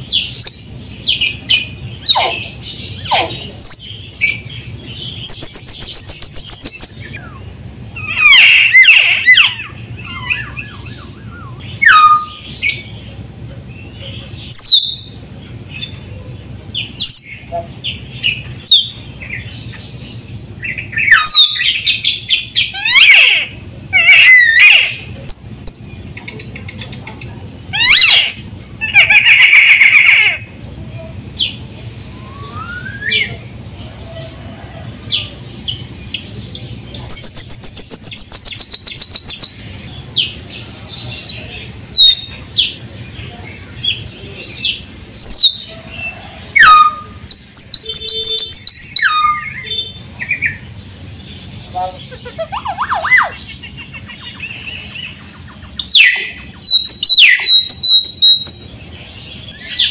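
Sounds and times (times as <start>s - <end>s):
rapid rattling bird trill: 0.0s - 30.5s, 35.0s - 43.2s, 46.5s - 59.9s
myna bird calling: 0.0s - 59.9s.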